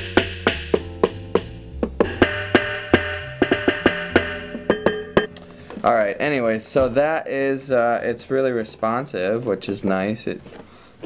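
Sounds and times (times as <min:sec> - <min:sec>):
electronic drum sounds from headphones: 0:00.0 - 0:05.6
drumsticks tapping rubber pads: 0:00.0 - 0:05.8.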